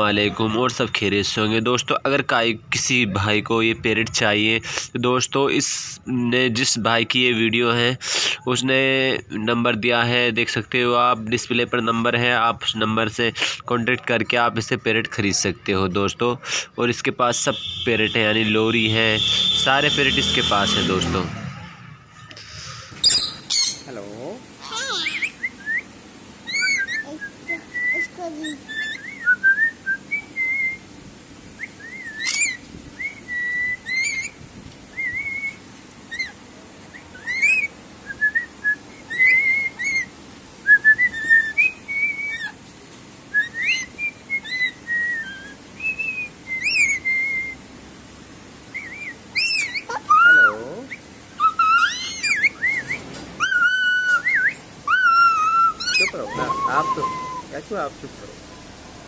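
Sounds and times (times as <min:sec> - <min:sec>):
birds whistling: 0:17.3 - 0:24.0, 0:24.6 - 0:30.9, 0:31.5 - 0:42.6, 0:43.3 - 0:47.6, 0:48.6 - 0:57.8.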